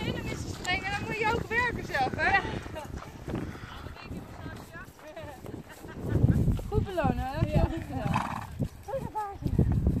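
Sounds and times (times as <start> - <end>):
hooves thudding on grass: 0.0 - 10.0.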